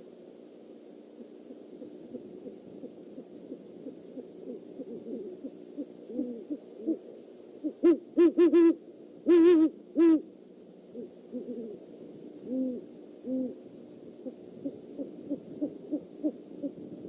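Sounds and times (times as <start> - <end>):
owl hooting: 1.1 - 10.3, 10.9 - 17.0.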